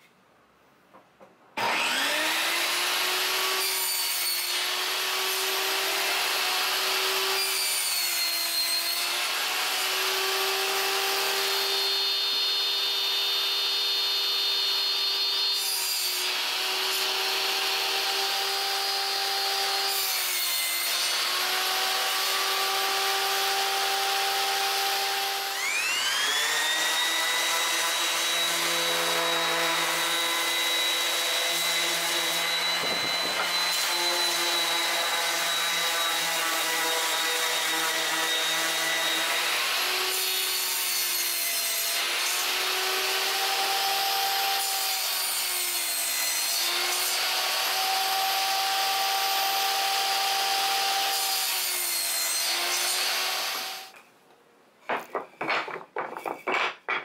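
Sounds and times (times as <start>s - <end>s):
table saw whining: 1.6s - 54.0s.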